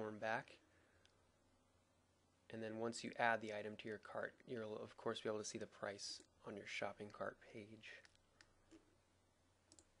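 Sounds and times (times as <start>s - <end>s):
computer mouse clicks: 9.7s - 10.0s.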